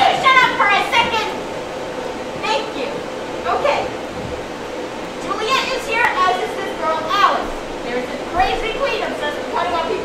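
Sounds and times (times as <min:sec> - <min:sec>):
children speaking and calling out: 0:00.0 - 0:04.1, 0:05.1 - 0:10.0.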